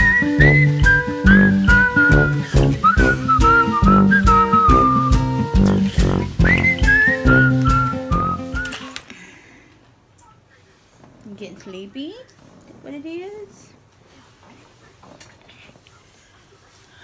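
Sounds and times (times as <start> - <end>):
upbeat music with whistled melody: 0.0 - 9.0.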